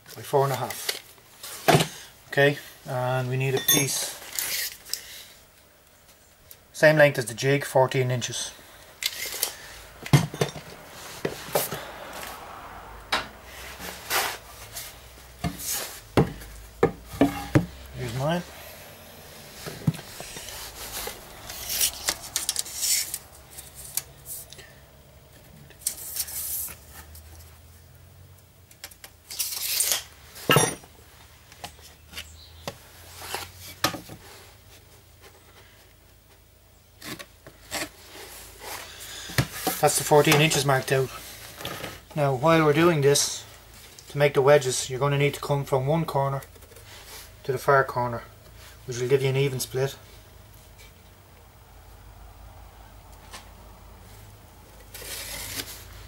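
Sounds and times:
tools knocking on workbench: 0:16.2 - 0:17.7.

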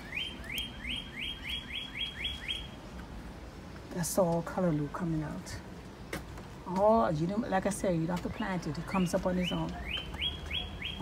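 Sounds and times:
songbird whistling: 0:00.0 - 0:02.8, 0:09.0 - 0:11.0.

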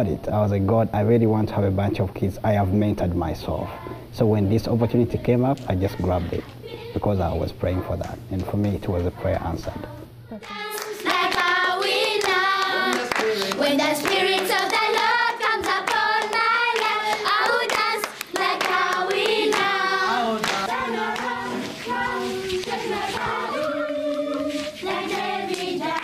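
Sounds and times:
children's choir singing: 0:09.2 - 0:26.0
clapping: 0:10.4 - 0:19.7, 0:20.4 - 0:21.3, 0:25.5 - 0:26.0.

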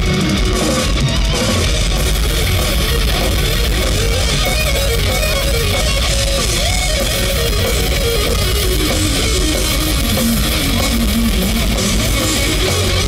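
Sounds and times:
distorted electric guitar: 0:00.0 - 0:13.0
heavy metal band playing: 0:00.0 - 0:13.0.

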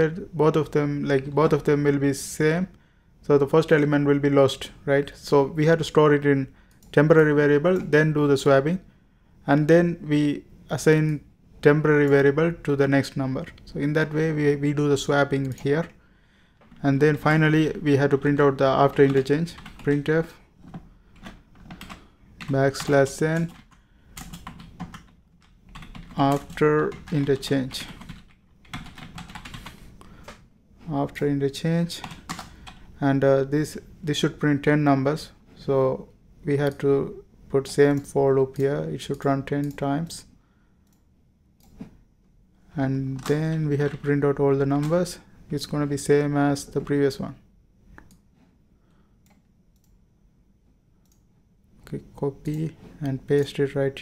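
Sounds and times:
typing on keyboard: 0:18.9 - 0:20.1, 0:20.7 - 0:30.4, 0:32.0 - 0:32.8
computer mouse clicks: 0:40.8 - 0:41.9, 0:47.9 - 0:48.3, 0:49.2 - 0:50.0, 0:51.0 - 0:51.3.

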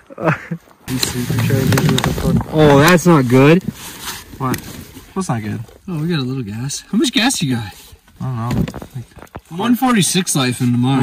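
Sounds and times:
laughter: 0:00.0 - 0:00.7
clicks and rustling: 0:00.9 - 0:05.8, 0:08.0 - 0:10.3.

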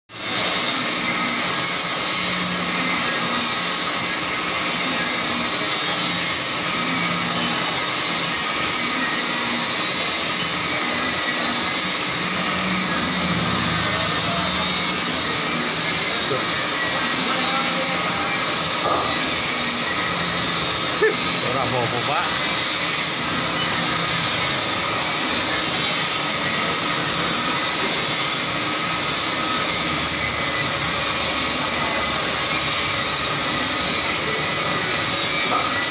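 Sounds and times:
lathe running: 0:00.1 - 0:35.9
machine hum: 0:00.1 - 0:35.9.

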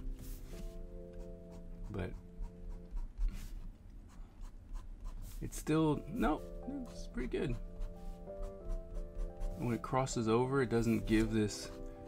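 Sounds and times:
pen scratching on paper: 0:00.2 - 0:12.0.

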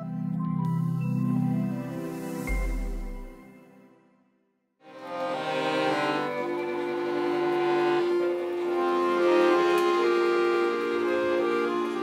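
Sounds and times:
accordion chords: 0:04.8 - 0:12.0
violin playing: 0:04.8 - 0:12.0.

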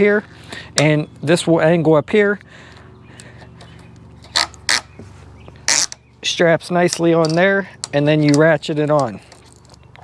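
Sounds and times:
plastic strap creaking rasps: 0:04.2 - 0:05.0, 0:05.6 - 0:06.0.

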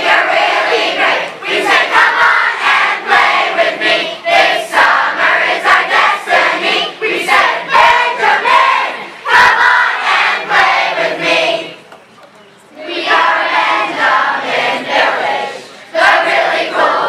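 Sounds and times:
children singing in unison: 0:00.0 - 0:11.8, 0:12.8 - 0:17.0.

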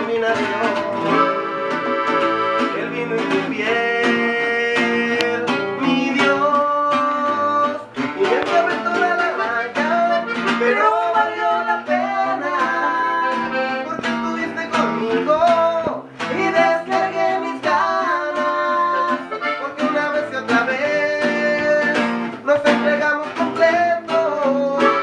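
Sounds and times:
button accordion melody: 0:00.0 - 0:25.0
strummed guitar: 0:00.0 - 0:25.0.

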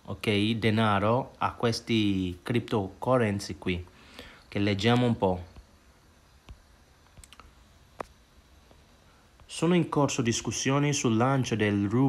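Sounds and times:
low room hiss: 0:00.0 - 0:12.0
faint short clicks: 0:06.4 - 0:08.2.

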